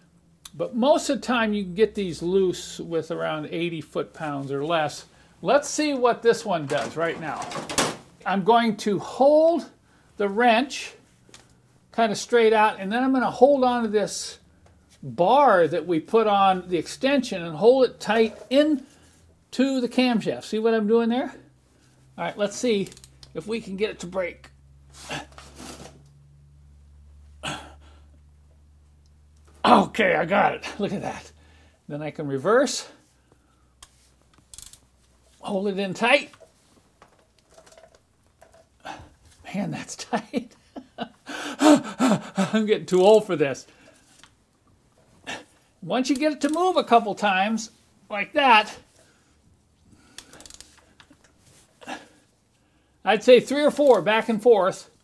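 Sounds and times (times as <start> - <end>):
low steady hum: 0.0 - 55.0
wrench clicking on metal: 22.8 - 23.2, 34.5 - 34.8, 50.2 - 50.7
man grunting with effort: 27.4 - 27.9, 41.3 - 42.6.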